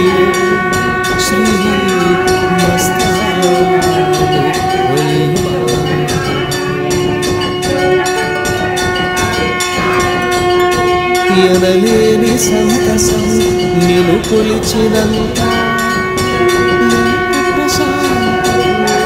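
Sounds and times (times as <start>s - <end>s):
man singing sustained notes: 0.0s - 8.5s, 11.2s - 19.0s
held drone: 0.0s - 19.0s
regular beat: 0.0s - 19.0s.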